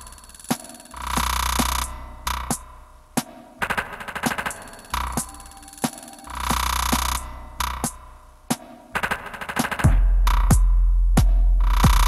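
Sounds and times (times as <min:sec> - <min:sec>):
electronic percussive hits: 0:00.0 - 0:12.0.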